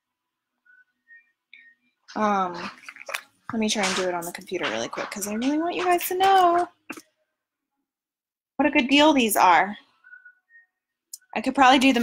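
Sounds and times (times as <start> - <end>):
faint high-pitched chirps: 9.9 - 11.3.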